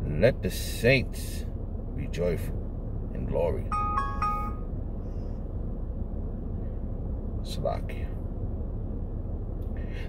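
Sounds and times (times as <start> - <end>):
steady low rumble: 0.0 - 10.0
electronic two-note chime: 3.7 - 4.7.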